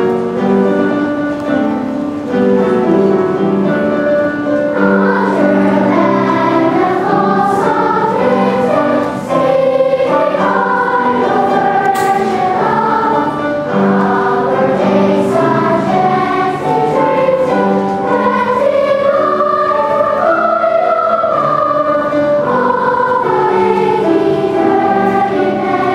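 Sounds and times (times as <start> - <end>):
girls choir singing: 1.8 - 25.9.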